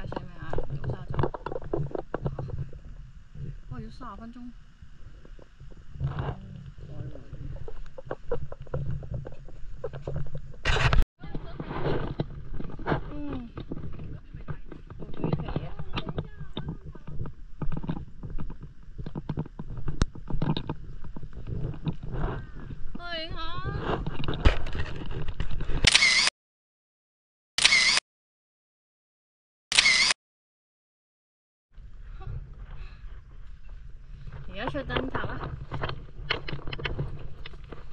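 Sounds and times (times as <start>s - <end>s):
steady low rumble: 0.0s - 11.7s.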